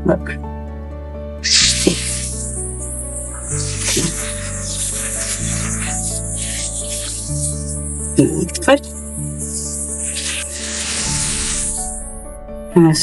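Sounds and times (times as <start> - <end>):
background music: 0.0 - 13.0
electric nail drill hissing: 1.4 - 12.3.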